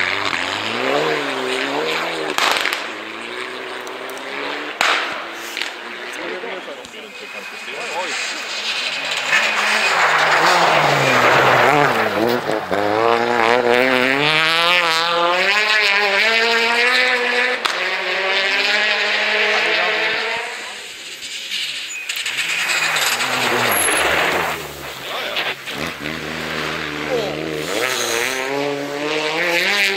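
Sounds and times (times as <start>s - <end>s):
another car engine approaching: 0.0s - 29.9s
rally car engine passing: 0.0s - 29.9s.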